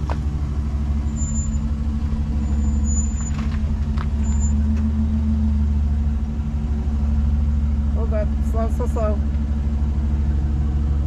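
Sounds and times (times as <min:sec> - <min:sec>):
pickup truck engine idling: 0:00.0 - 0:11.0.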